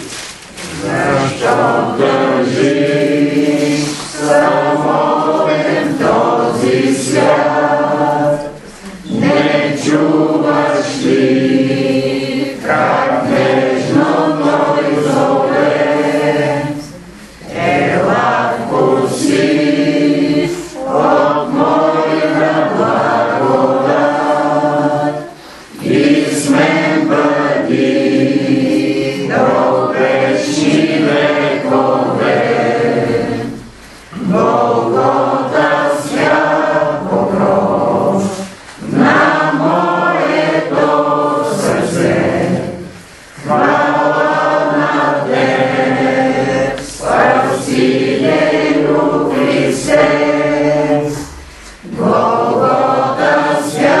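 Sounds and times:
group singing a hymn: 0.0 - 54.0.

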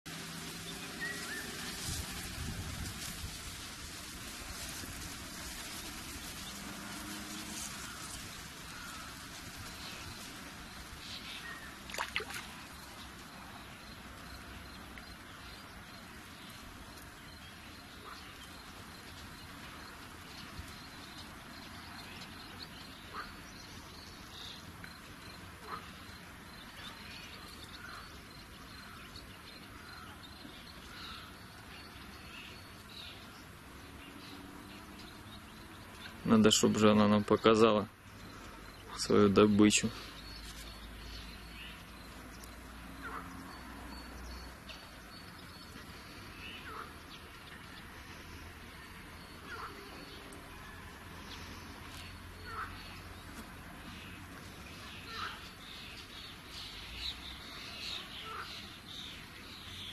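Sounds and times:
steady low hiss: 0.1 - 43.0
faint animal calls: 49.4 - 50.8, 52.4 - 53.0, 54.9 - 55.5, 58.0 - 58.7.

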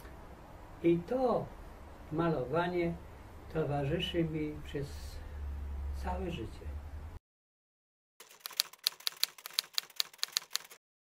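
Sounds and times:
typewriter keystrokes: 8.2 - 10.8.

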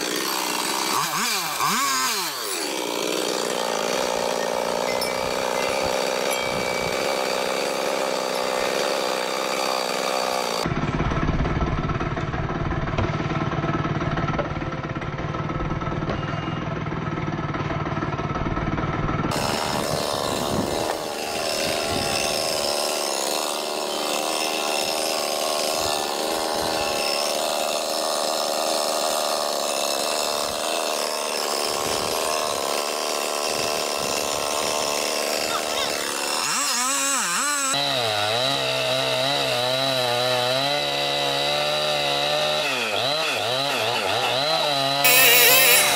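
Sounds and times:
chainsaw running: 0.0 - 16.0, 16.7 - 45.9.

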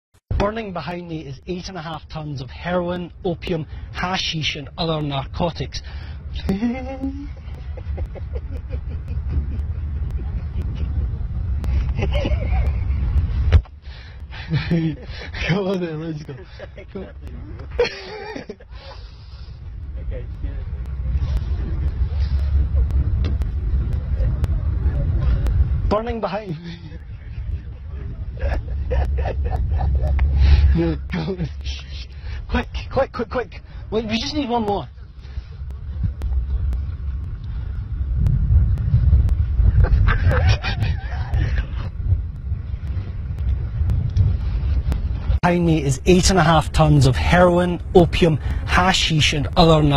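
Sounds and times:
low outdoor rumble: 0.3 - 49.9
wind buffeting microphone: 0.3 - 49.9
man's stifled laughter: 6.4 - 11.2, 14.4 - 15.6, 16.3 - 19.0, 26.6 - 31.6, 39.7 - 41.9
faint clicks: 34.9 - 45.2.

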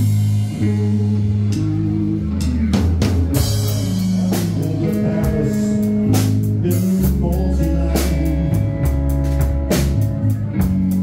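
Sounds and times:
electric bass low notes: 0.0 - 11.0
live band playing blues-rock ballad: 0.0 - 11.0.

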